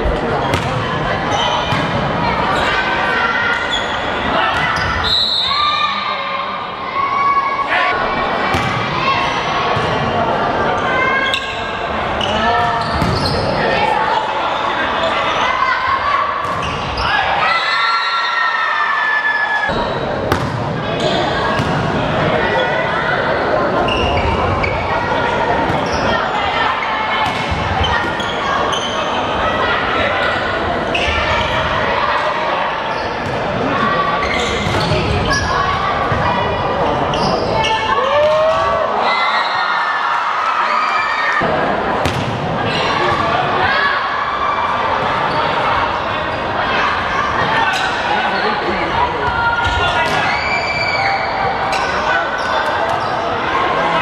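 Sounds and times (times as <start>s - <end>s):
people shouting and cheering: 0.0s - 54.0s
volleyball struck by hands: 8.5s - 8.8s, 20.3s - 20.7s, 42.0s - 42.4s.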